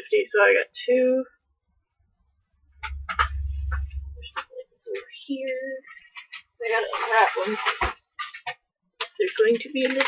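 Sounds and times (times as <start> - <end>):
low rumble: 2.3 - 4.5.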